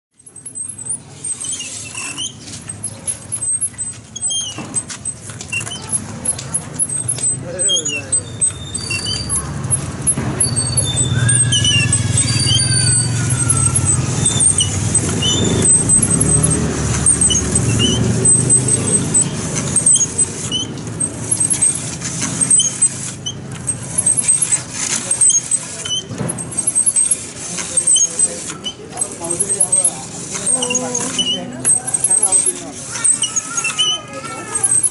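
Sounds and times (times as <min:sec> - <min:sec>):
high squeaks: 0:00.1 - 0:34.9
knife grinding on sharpening wheel: 0:00.2 - 0:34.9.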